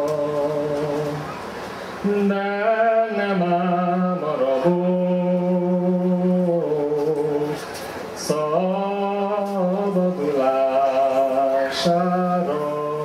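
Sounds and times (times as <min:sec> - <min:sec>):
man singing unaccompanied: 0:00.0 - 0:01.4, 0:02.0 - 0:13.0.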